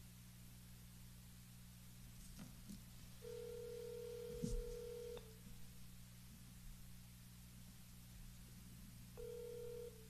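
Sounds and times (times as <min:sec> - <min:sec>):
telephone ringback tone: 0:03.2 - 0:05.3, 0:09.2 - 0:10.0.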